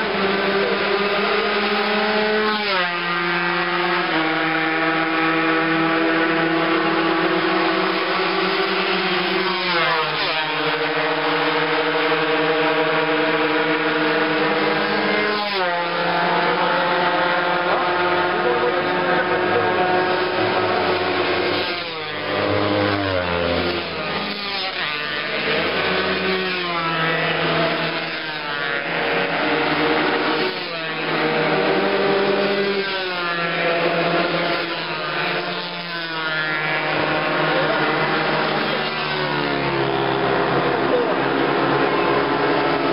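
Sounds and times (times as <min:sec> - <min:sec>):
racing motorcycles accelerating: 0:00.0 - 0:42.9.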